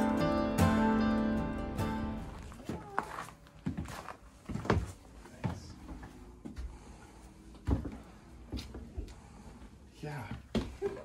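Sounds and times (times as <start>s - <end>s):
footsteps on wooden deck: 2.3s - 6.8s, 7.5s - 9.3s.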